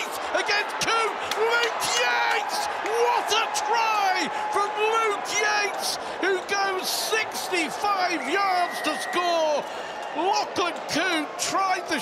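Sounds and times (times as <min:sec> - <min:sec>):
man commentating: 0:00.0 - 0:12.0
stadium crowd noise: 0:00.0 - 0:12.0.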